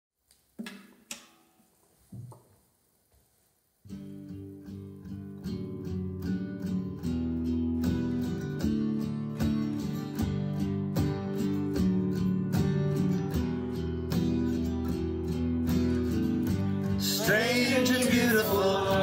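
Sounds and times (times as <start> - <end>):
acoustic guitar strumming: 3.9 - 19.0.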